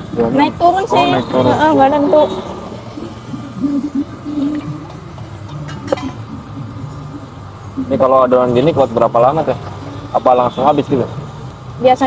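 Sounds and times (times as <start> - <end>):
murmur of faint voices: 0.0 - 12.0
steady hum: 0.0 - 12.0.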